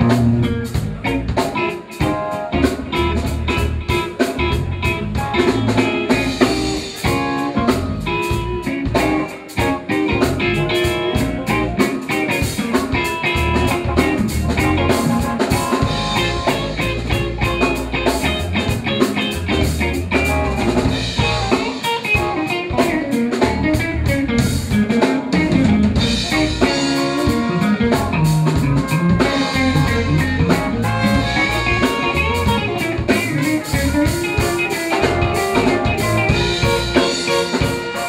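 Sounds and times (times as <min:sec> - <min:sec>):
bass line: 0:00.0 - 0:38.0
drum kit quick hits: 0:00.0 - 0:38.0
electric guitar: 0:00.0 - 0:38.0.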